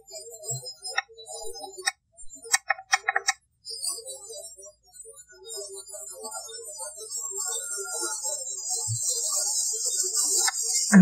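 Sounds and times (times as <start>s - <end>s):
sharp clicks in woodland: 1.8s - 3.4s.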